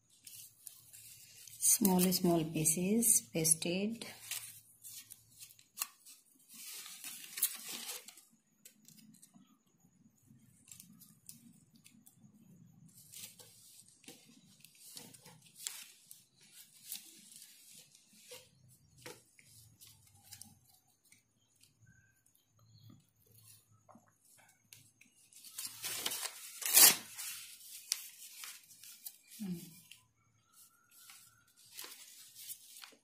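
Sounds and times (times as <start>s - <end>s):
paper rustling and tearing: 4.2s - 8.3s, 25.3s - 29.4s.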